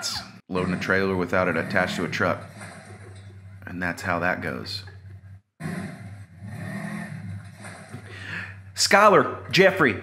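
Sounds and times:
utility vehicle engine revving: 0.5s - 9.5s.

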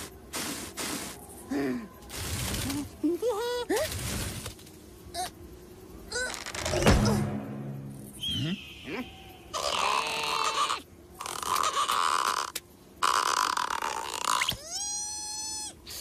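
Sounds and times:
comic sound effects: 6.6s - 9.3s.

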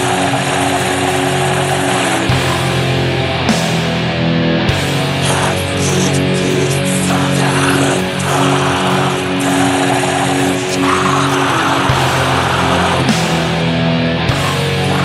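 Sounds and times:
distorted guitar sustained chords: 0.0s - 15.0s
noisy distorted wash: 0.0s - 15.0s.

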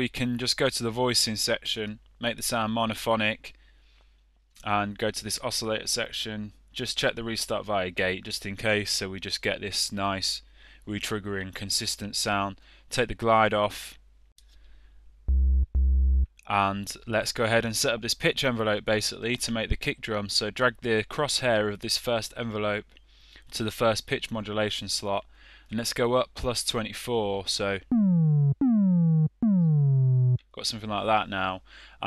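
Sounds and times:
low synth notes: 15.3s - 16.3s, 27.9s - 30.4s.

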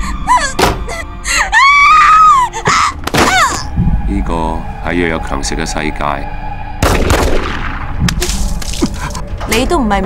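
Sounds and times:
woman crying out: 0.0s - 3.7s
music: 0.0s - 10.0s
woman screaming in terror: 0.3s - 3.7s.

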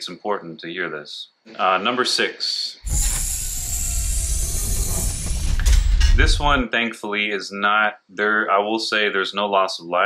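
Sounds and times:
high hiss: 2.7s - 6.6s
deep rumble: 2.8s - 6.6s
mechanical whirring: 2.8s - 6.6s
sharp click: 2.8s - 6.6s.

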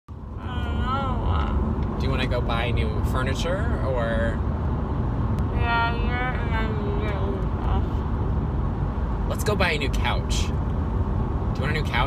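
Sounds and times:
car cabin road rumble: 0.1s - 12.0s
woman's wavering wordless vocal: 0.4s - 1.6s, 5.6s - 8.0s.

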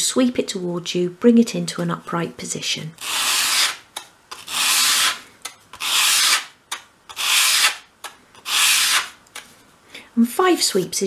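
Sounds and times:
wood scraping on sandpaper: 3.0s - 3.8s, 4.4s - 5.2s, 5.8s - 6.5s, 7.1s - 7.8s, 8.4s - 9.2s.

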